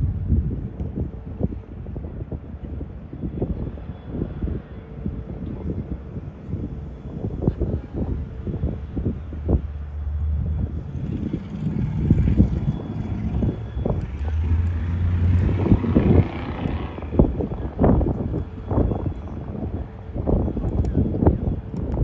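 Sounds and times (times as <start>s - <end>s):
ship diesel engine drone: 0.0s - 22.0s
wind buffeting microphone: 0.0s - 22.0s.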